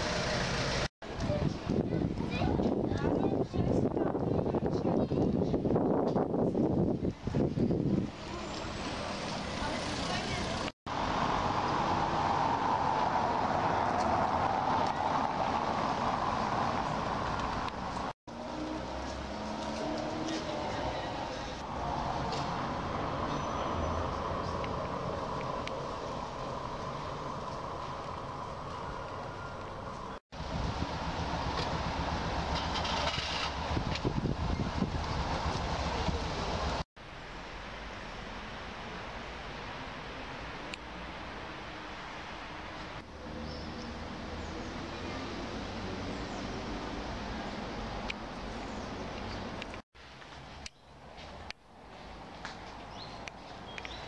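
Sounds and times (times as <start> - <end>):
car traffic: 0.0 - 3.4, 8.0 - 54.0
wind buffeting microphone: 1.0 - 8.9, 30.3 - 36.8
people's voices: 8.2 - 10.7, 20.1 - 22.4.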